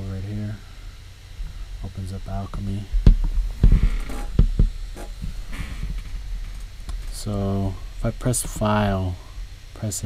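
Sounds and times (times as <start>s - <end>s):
steady low hum: 0.0s - 10.0s
dull low thumps: 2.9s - 7.1s.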